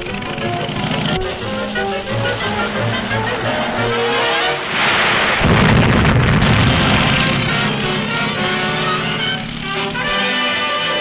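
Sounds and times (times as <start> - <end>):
dramatic orchestral music: 0.0 - 11.0
heavy low rumble: 0.2 - 10.1
loud rushing noise: 3.0 - 10.1.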